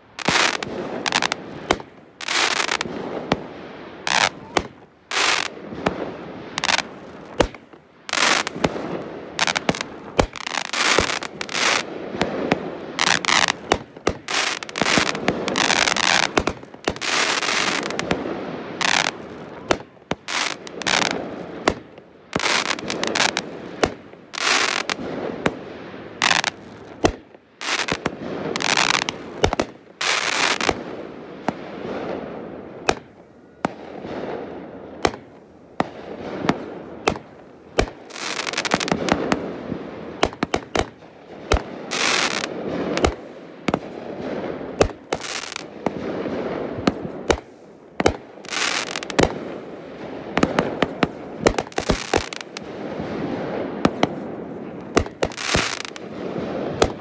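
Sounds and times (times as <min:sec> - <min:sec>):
fireworks bangs: 0:00.0 - 0:57.0
fireworks hissing: 0:00.2 - 0:30.9, 0:37.8 - 0:39.6, 0:41.5 - 0:43.4, 0:48.4 - 0:52.8, 0:54.9 - 0:57.0.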